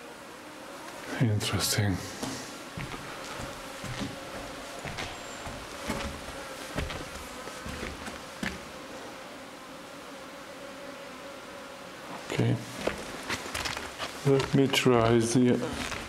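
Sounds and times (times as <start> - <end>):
flying insect buzzing: 0.0 - 16.0
short knocks of steps: 2.2 - 8.6, 12.8 - 15.2.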